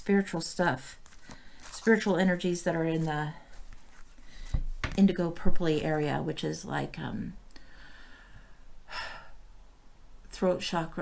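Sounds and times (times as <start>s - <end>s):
woman breathing: 1.1s - 1.8s, 3.5s - 4.7s, 7.5s - 9.5s.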